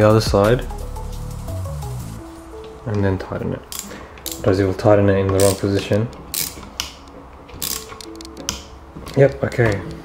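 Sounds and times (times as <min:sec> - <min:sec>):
hand driver ratcheting and clicking: 0:05.3 - 0:08.6.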